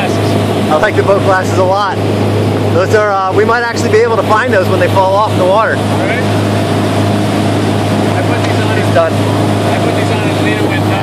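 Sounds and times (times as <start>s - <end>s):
boat engine droning: 0.0s - 11.0s
wind: 0.0s - 11.0s.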